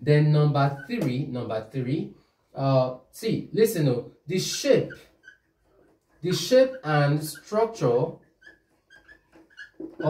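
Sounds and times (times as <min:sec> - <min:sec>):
marker squeaking on whiteboard: 0:00.5 - 0:01.3, 0:04.3 - 0:10.0.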